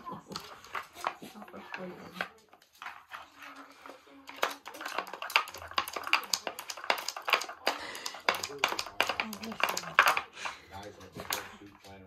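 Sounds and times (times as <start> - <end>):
plastic puzzle feeder clattering: 0.0 - 12.0.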